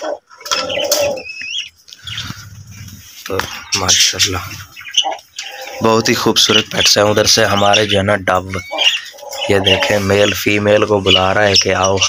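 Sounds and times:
faint background noise: 0:00.0 - 0:12.0
bird whistled chirp: 0:00.7 - 0:02.3.

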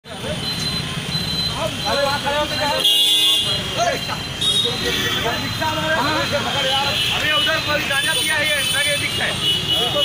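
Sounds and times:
crowd voices: 0:00.0 - 0:10.0
road traffic rumble: 0:00.0 - 0:10.0.

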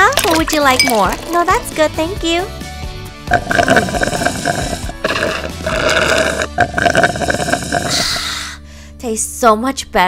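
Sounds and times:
background music: 0:00.0 - 0:10.0
slurping through a straw: 0:03.3 - 0:08.4.

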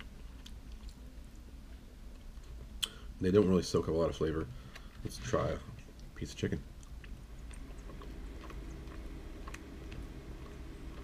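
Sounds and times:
person chewing: 0:00.0 - 0:03.0, 0:04.6 - 0:11.0
low room hum: 0:00.0 - 0:11.0.

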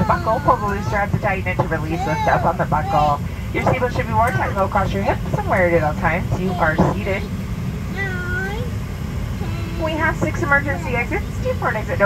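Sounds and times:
announcement speech over speaker: 0:00.0 - 0:08.6, 0:09.4 - 0:12.0
airliner cabin hum: 0:00.0 - 0:12.0.

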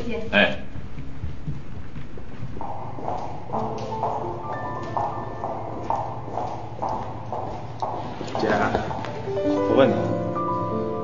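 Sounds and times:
footsteps of hard-soled shoes: 0:00.6 - 0:10.2.

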